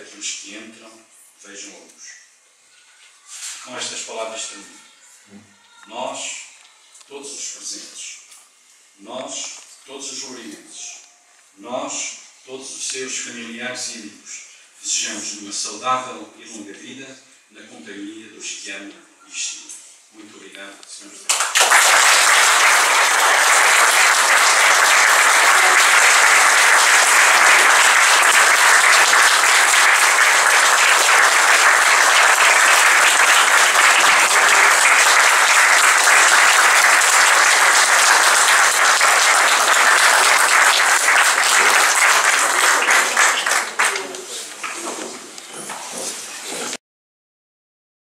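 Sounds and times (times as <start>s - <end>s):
audience applauding: 21.3s - 44.8s.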